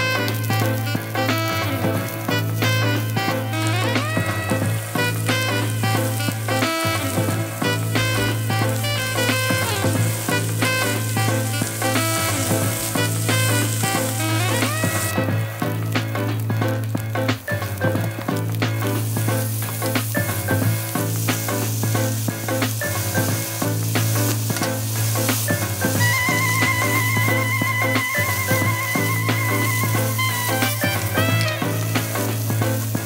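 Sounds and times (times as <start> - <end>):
background music: 0.0 - 33.0
vegetables sizzling in frying pan: 0.0 - 33.0.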